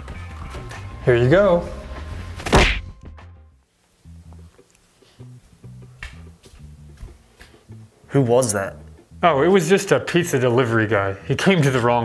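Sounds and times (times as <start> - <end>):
heavy thunk: 2.4 - 2.9
music with stepping bass line: 5.2 - 8.0.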